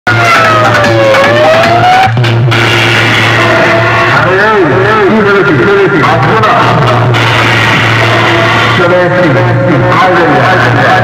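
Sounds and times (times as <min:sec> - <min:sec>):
loud music through horn loudspeakers: 0:00.1 - 0:11.0.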